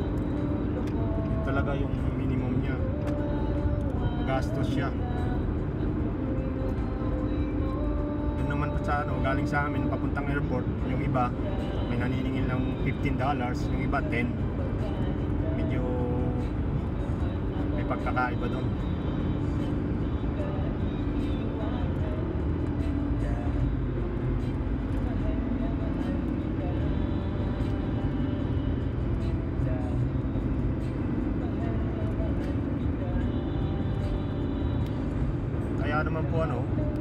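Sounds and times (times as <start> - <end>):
car road and engine noise: 0.0 - 37.0.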